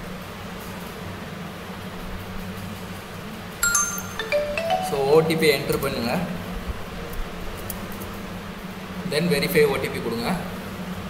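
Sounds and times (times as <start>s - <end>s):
electronic notification chime: 3.6s - 5.6s.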